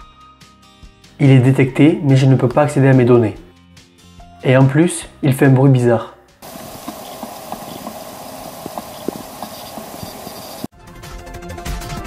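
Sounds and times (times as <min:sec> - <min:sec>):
hard drive hissing: 0:06.4 - 0:10.7.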